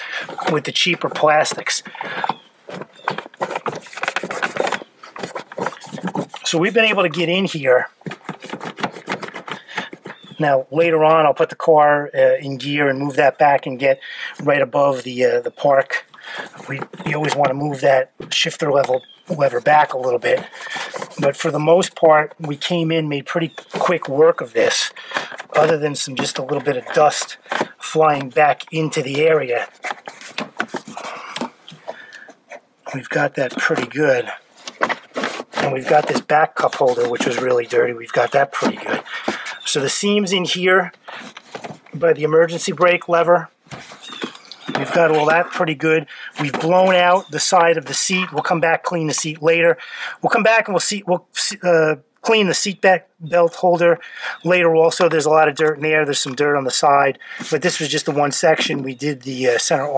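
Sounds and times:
handling clicks and knocks: 0.0s - 10.4s, 15.8s - 43.0s, 43.7s - 48.5s
towel rubbing on plastic: 0.0s - 10.4s, 15.9s - 22.8s, 32.9s - 40.4s.

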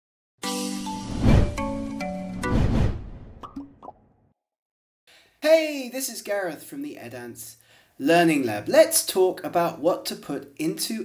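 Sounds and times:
synth chord jingle: 0.4s - 2.5s.

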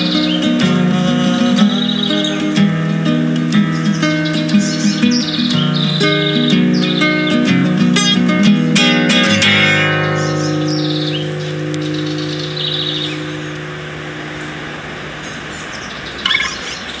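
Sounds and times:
acoustic guitar playing: 0.0s - 16.6s
birds chirping: 0.0s - 17.0s.

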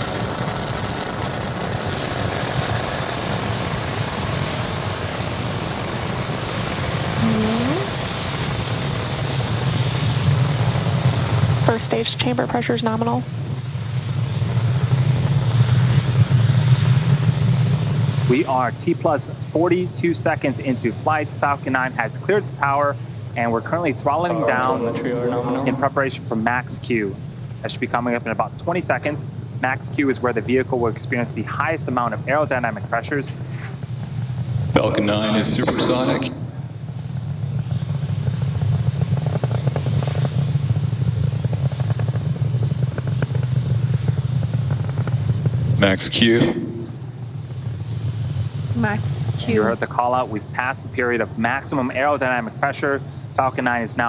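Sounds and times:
rocket engines rumbling: 0.0s - 54.0s.

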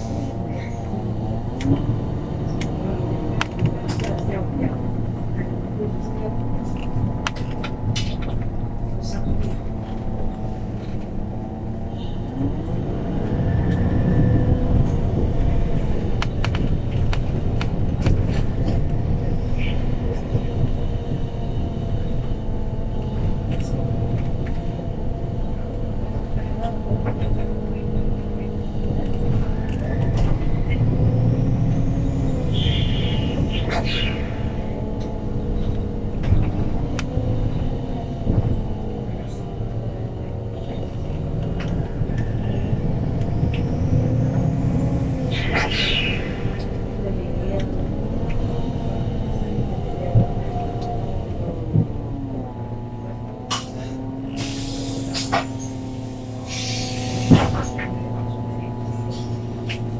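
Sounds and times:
bus engine and gearbox drone: 0.0s - 59.9s.

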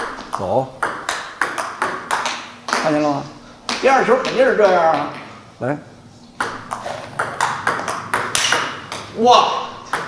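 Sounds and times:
table tennis ball clicking: 0.0s - 3.0s, 6.4s - 9.2s.

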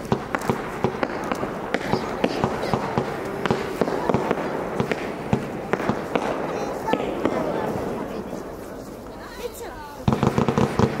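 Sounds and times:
firework shells bursting: 0.0s - 8.5s, 10.0s - 11.0s
crackling rumble: 0.0s - 11.0s.

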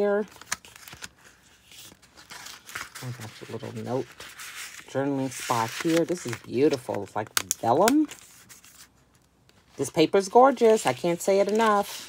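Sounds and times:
paper rustling and scraping: 0.2s - 12.0s.

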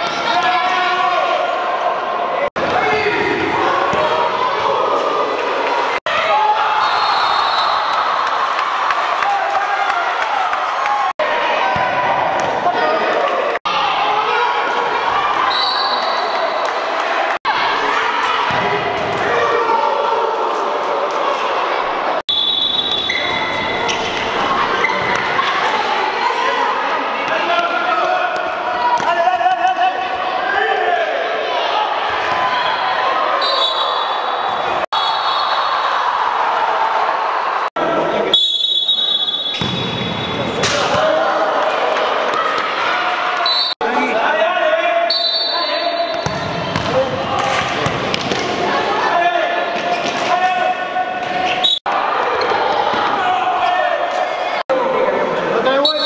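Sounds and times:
people shouting in a gym: 0.0s - 56.0s.

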